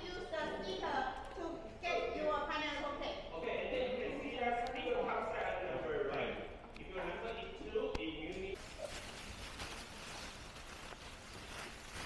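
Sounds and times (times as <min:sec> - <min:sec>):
large hall room noise: 0:00.0 - 0:12.0.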